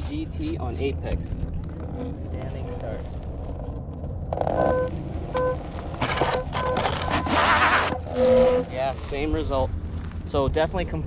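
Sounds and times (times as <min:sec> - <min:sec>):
low rumble: 0:00.0 - 0:07.2, 0:07.9 - 0:11.0.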